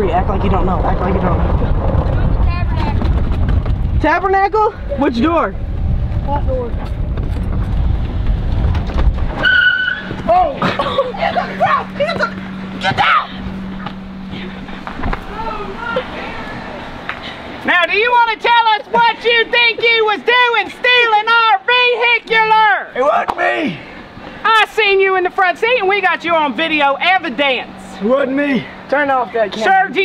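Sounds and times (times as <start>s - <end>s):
wind buffeting microphone: 0.0s - 17.6s
golf cart driving: 0.0s - 30.0s
high-pitched squeal: 9.4s - 10.5s.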